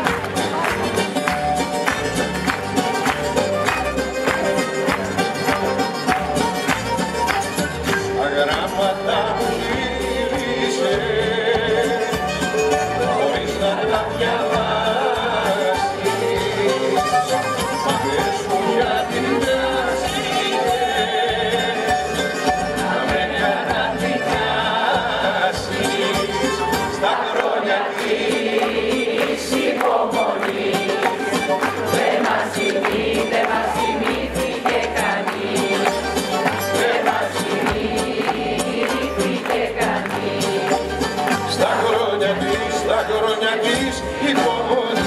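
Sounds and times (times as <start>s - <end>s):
bass: 0.0s - 27.1s, 28.4s - 45.0s
drums: 0.0s - 27.2s, 28.0s - 45.0s
accordion: 0.0s - 45.0s
acoustic guitars: 0.0s - 45.0s
band playing a song: 0.0s - 45.0s
man singing: 8.0s - 45.0s.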